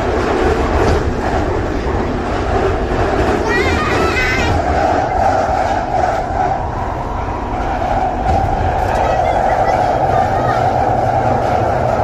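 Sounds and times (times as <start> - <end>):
train wheels rumbling on track: 0.0 - 12.0.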